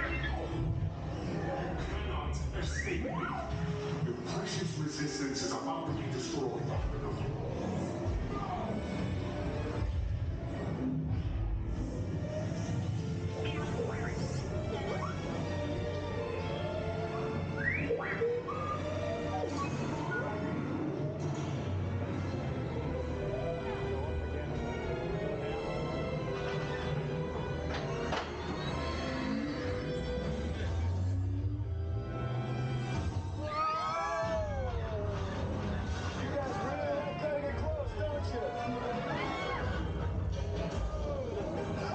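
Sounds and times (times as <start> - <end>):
music with sci-fi effects: 0.0 - 41.9.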